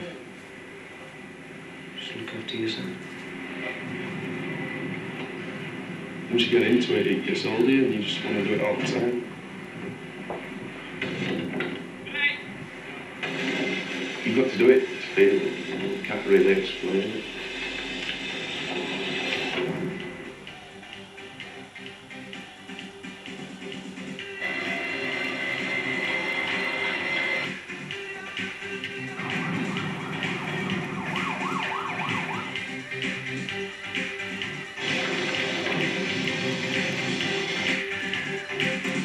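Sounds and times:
fairground ride mechanical noise: 0.0s - 20.9s, 22.7s - 27.9s
fairground ride music: 12.7s - 39.0s
siren-like whooping effect: 29.3s - 32.6s.

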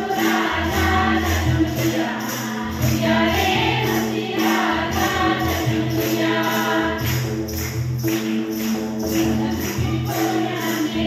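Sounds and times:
women singing a hymn: 0.0s - 7.4s, 9.1s - 11.0s
handclapping: 0.0s - 11.0s
steady beat: 0.0s - 11.0s.

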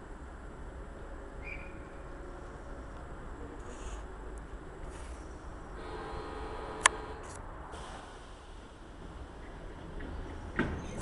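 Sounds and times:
train rumbling: 0.0s - 11.0s
faint motor hum: 5.8s - 7.2s.

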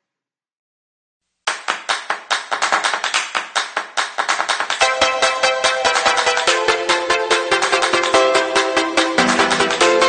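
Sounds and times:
hand clapping: 1.5s - 10.0s.

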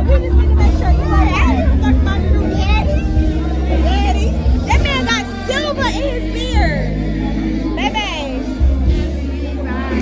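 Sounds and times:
crowd chatter: 0.0s - 10.0s
loud bass-heavy music: 0.0s - 10.0s
people singing and shouting: 0.0s - 10.0s.

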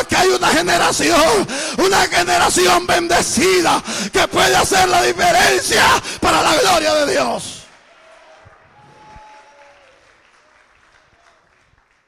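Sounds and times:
congregation applauding: 7.6s - 12.0s.

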